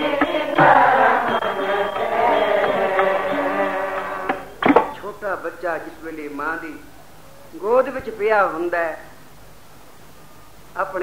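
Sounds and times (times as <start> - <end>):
harmonium accompaniment: 0.0 - 4.8
voices chanting a hymn: 0.0 - 7.1.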